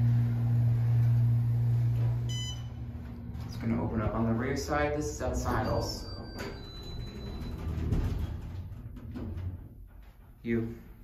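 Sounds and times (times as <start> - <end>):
elevator doors sliding open: 0.0 - 10.3
door mechanism rumble: 0.0 - 10.4.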